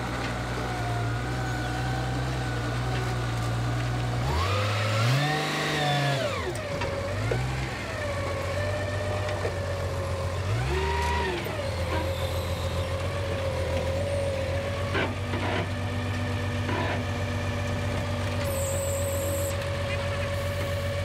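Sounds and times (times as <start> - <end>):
diesel truck engine idling and revving: 0.0 - 21.0.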